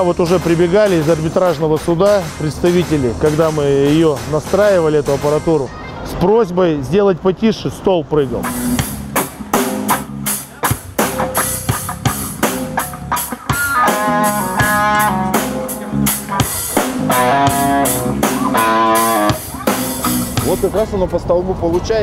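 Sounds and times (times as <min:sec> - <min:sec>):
drum kit beat: 0:00.0 - 0:05.7, 0:08.2 - 0:20.9
electric guitar single notes: 0:08.4 - 0:20.6.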